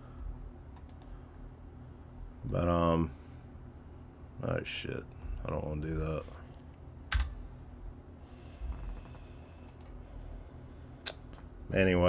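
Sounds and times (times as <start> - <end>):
low room hum: 0.0 - 12.0
computer mouse clicks: 0.8 - 1.2, 9.6 - 10.0.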